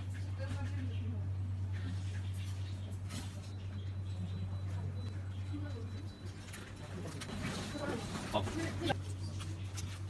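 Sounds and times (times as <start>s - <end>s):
faint low murmuring: 0.0s - 10.0s.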